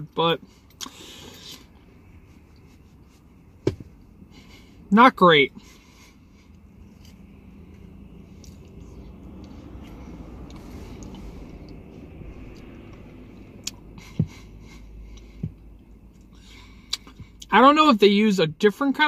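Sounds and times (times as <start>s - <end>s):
low rumble inside car: 0.0s - 19.0s
faint chewing: 6.4s - 13.0s.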